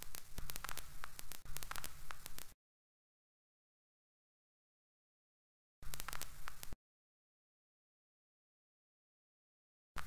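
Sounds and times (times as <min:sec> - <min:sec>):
crackling static: 0:00.0 - 0:02.6, 0:05.8 - 0:06.8
sharp clicks: 0:00.0 - 0:02.6, 0:05.8 - 0:06.8.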